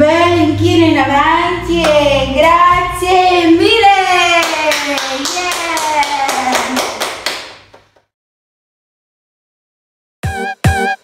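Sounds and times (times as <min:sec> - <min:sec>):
hands clapping in rhythm: 0:04.4 - 0:08.1.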